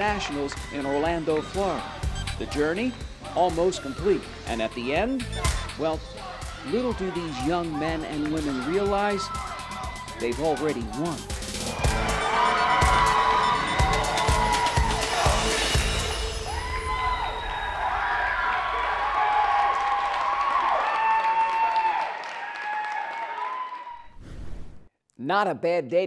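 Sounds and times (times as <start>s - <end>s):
music: 0.0s - 19.1s
crowd cheering and shouting: 0.0s - 24.1s.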